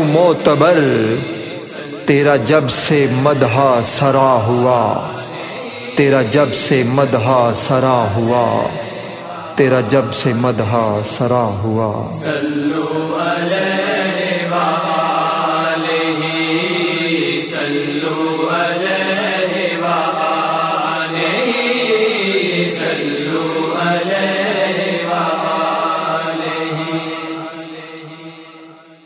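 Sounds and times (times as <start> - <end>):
backing voices chanting: 0.0 - 11.2.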